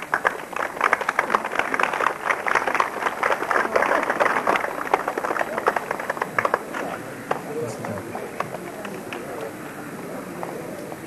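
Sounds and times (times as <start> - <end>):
crowd applauding: 0.0 - 9.3.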